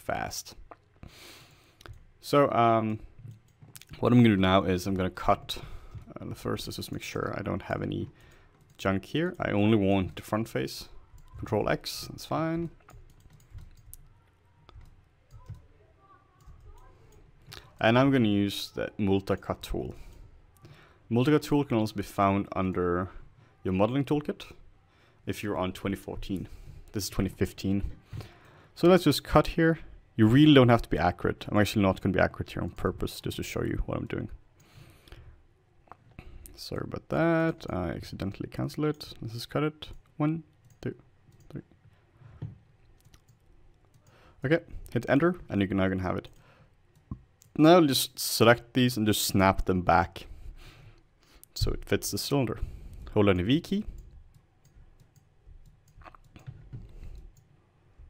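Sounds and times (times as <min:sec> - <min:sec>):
computer mouse and keyboard clicks: 0:12.8 - 0:15.7, 0:16.4 - 0:17.9, 0:53.9 - 0:57.6.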